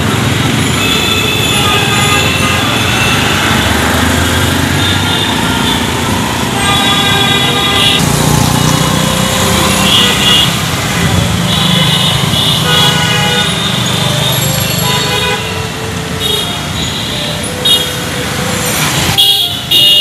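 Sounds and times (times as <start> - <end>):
car and motorcycle engines running: 0.0 - 14.8
car horns honking: 0.0 - 20.0.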